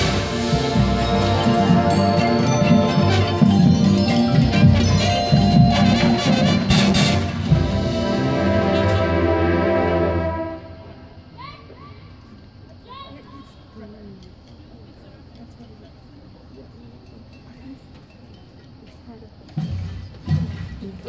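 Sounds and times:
marching band brass and percussion: 0:00.0 - 0:11.3, 0:19.5 - 0:21.0.

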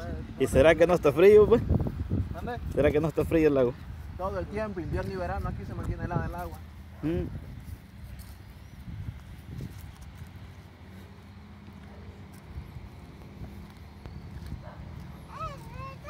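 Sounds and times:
wind rumble on microphone: 0:00.0 - 0:10.7, 0:12.4 - 0:16.0
footsteps on paved path: 0:00.9 - 0:16.0
short high-pitched voice: 0:15.3 - 0:16.0.

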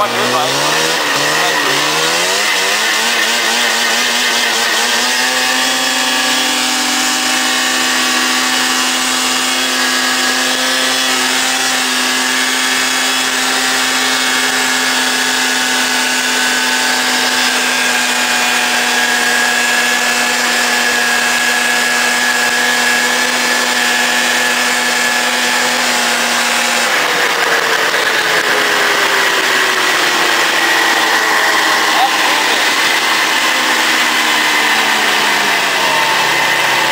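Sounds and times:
snowmobile engine running: 0:00.0 - 0:36.9.

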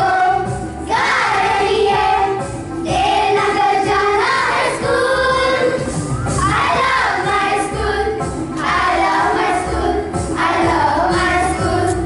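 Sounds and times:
children singing in unison: 0:00.0 - 0:12.0.

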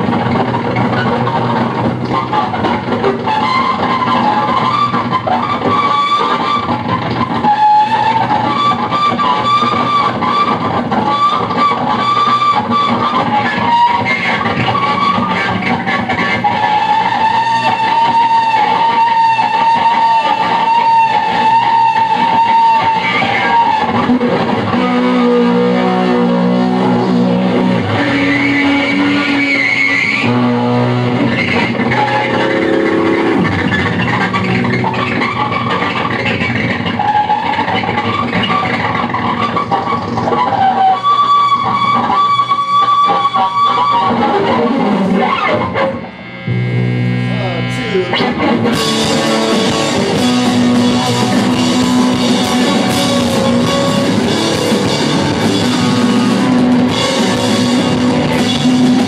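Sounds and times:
electric guitar held notes: 0:00.0 - 0:59.0
live rock band: 0:00.0 - 0:59.0.

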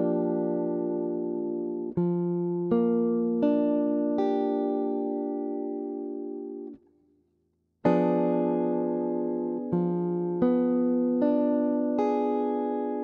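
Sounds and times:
clean electric guitar jazz chords: 0:00.0 - 0:06.8, 0:07.8 - 0:13.0.

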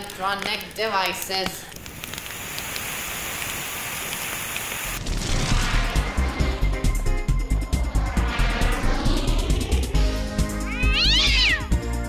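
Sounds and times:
water jet hissing: 0:01.8 - 0:05.0.

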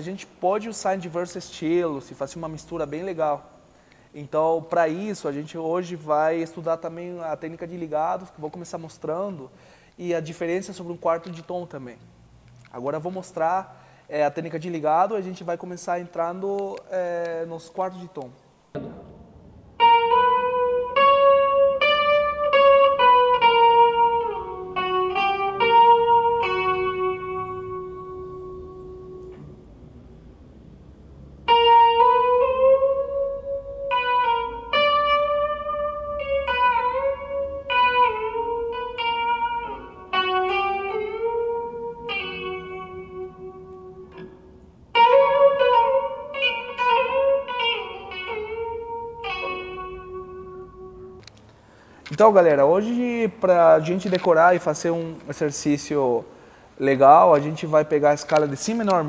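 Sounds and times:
electric guitar legato phrases: 0:00.0 - 0:17.6, 0:18.2 - 0:59.0.

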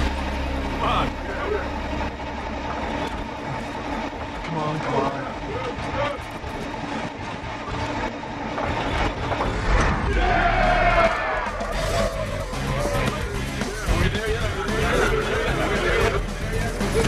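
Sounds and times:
vehicle engine starting and running: 0:00.0 - 0:17.0
background music: 0:09.9 - 0:17.0.

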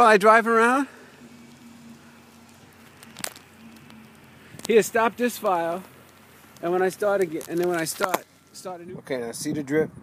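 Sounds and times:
man speaking: 0:00.0 - 0:01.0, 0:04.6 - 0:05.9, 0:06.6 - 0:10.0
faint outdoor hiss: 0:00.0 - 0:10.0.

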